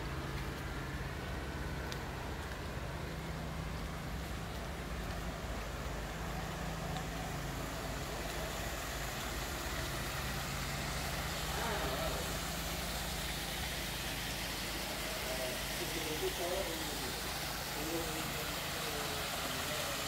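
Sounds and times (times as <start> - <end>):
low mechanical hum: 0.0 - 20.0
noisy background: 0.0 - 20.0
faint voices: 0.8 - 20.0.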